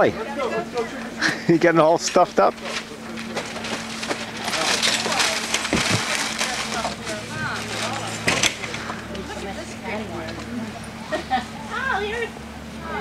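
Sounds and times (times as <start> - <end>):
faint voices: 0.0 - 13.0
newspaper crumpling and rustling: 2.6 - 8.3.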